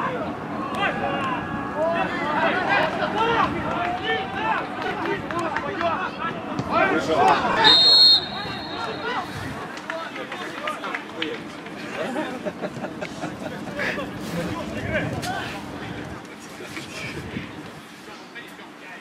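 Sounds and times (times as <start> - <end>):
players shouting: 0.0 - 10.9
referee's whistle blast: 7.6 - 9.2.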